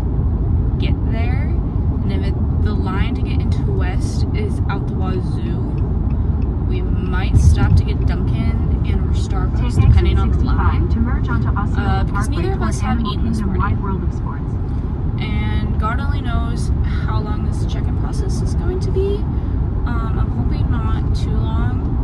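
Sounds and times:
low road rumble inside car: 0:00.0 - 0:22.0
person talking: 0:06.7 - 0:14.5.

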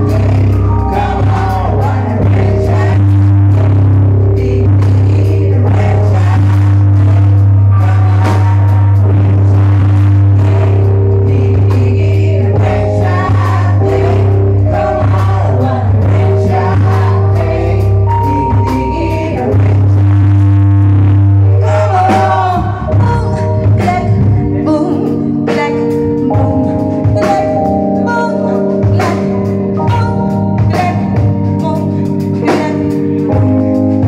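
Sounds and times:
drum kit: 0:00.0 - 0:34.0
electric bass: 0:00.0 - 0:34.0
woman singing: 0:11.3 - 0:20.3, 0:21.6 - 0:33.5.

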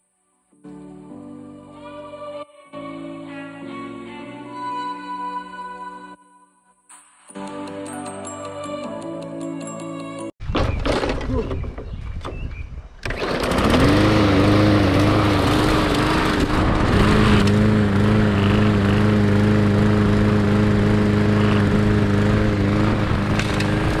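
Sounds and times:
lawn mower engine: 0:13.0 - 0:24.0.

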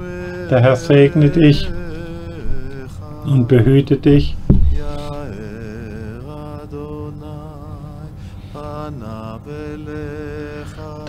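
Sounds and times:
person singing chant-like phrases: 0:00.0 - 0:11.0.

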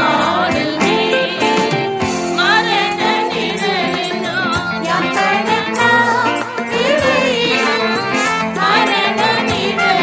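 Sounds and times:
voices singing a hymn: 0:00.0 - 0:10.0.

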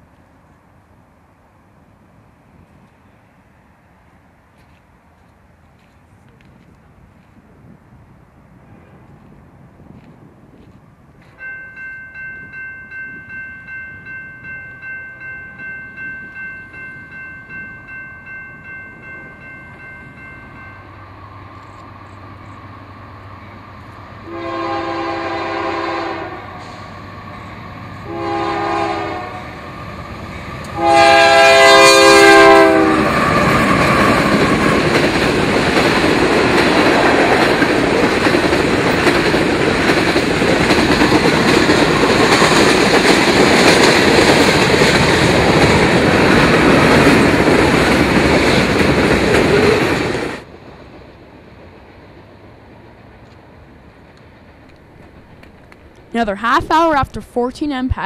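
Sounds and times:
crossing warning bell dinging: 0:11.2 - 0:22.6, 0:30.7 - 0:36.7
locomotive air horn blasts: 0:24.2 - 0:26.9, 0:28.0 - 0:29.4, 0:30.8 - 0:33.2
train wheels clattering: 0:32.3 - 0:50.5.

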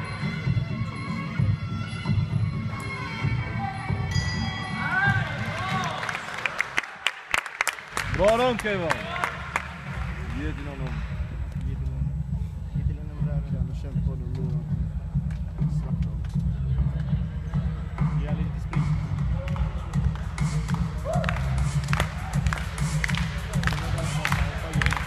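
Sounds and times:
crowd talking: 0:08.2 - 0:25.0
deep pulsing bass music: 0:09.4 - 0:25.0.

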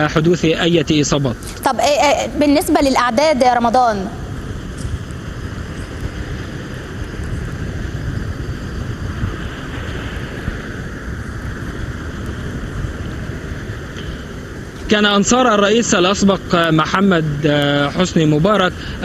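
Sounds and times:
wind on microphone: 0:00.0 - 0:19.0.

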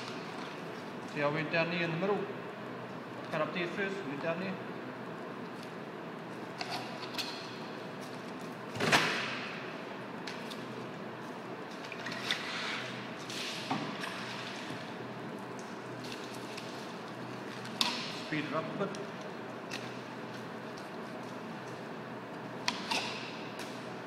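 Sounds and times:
steady room hum: 0:00.0 - 0:24.0.

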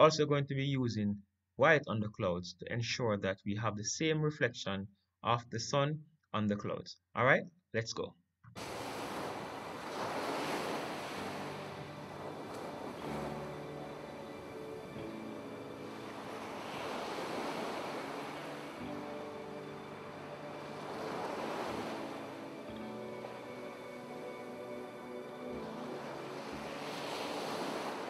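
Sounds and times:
ocean waves washing: 0:08.6 - 0:28.0
soft music with held notes: 0:09.4 - 0:28.0.

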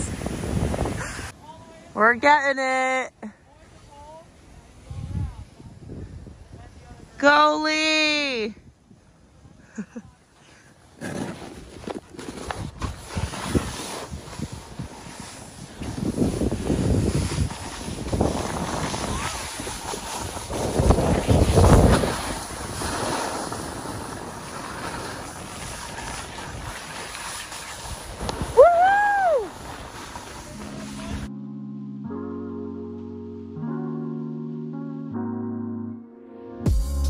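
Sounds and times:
snowboard scraping over snow: 0:00.0 - 0:01.8, 0:10.5 - 0:31.3
wind buffeting microphone: 0:00.0 - 0:02.0, 0:04.5 - 0:07.2, 0:12.4 - 0:31.3.

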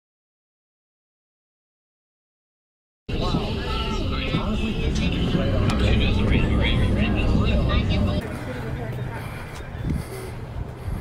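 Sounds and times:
car road and engine rumble: 0:03.1 - 0:11.0
indistinct voices: 0:03.1 - 0:11.0.

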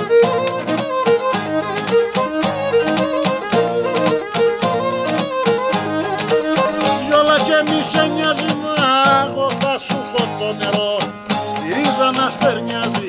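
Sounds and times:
lute and guitar strumming: 0:00.0 - 0:13.0.

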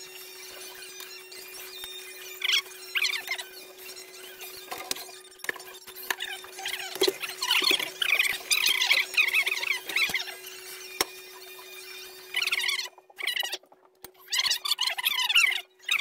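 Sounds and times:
sped-up squeaky voices: 0:00.0 - 0:16.0.

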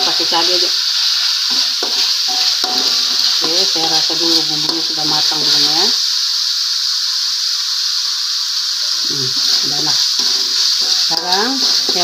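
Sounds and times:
paste sizzling in hot oil: 0:00.0 - 0:12.0.

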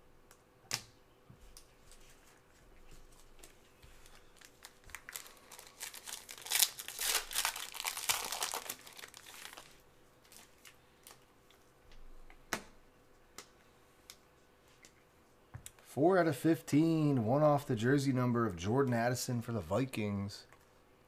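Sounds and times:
plastic wrapper crinkling: 0:03.1 - 0:11.2.

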